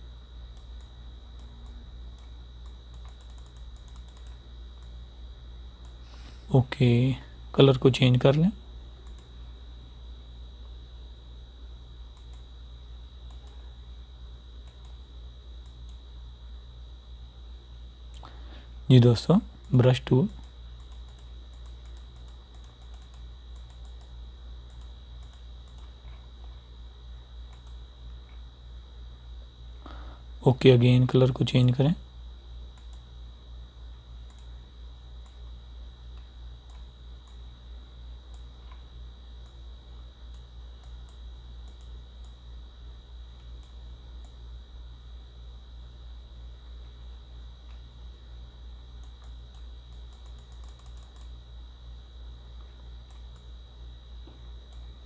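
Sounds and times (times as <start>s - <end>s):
faint high whine: 0.0s - 55.0s
low electrical hum: 0.0s - 55.0s
mouse and keyboard clicking: 0.6s - 5.0s, 19.6s - 24.1s, 49.0s - 51.3s.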